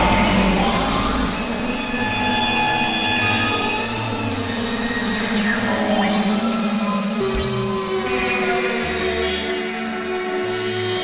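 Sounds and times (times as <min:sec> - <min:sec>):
low synthesizer drone: 0:00.0 - 0:11.0.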